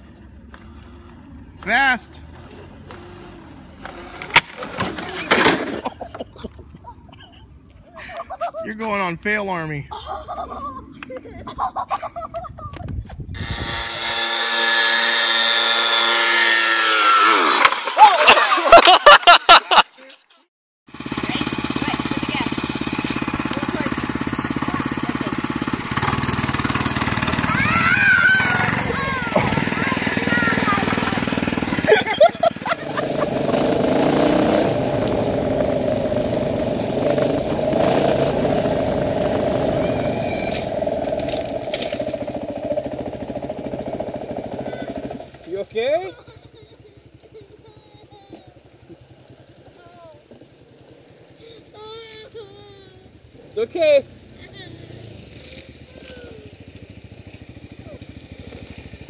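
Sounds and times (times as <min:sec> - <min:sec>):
small motorcycle engines running: 0:00.0 - 0:12.4, 0:13.4 - 0:19.0, 0:20.9 - 0:59.0
children's voices: 0:27.3 - 0:32.2, 0:46.4 - 0:48.8, 0:49.7 - 0:50.4, 0:51.4 - 0:53.2, 0:54.4 - 0:56.6.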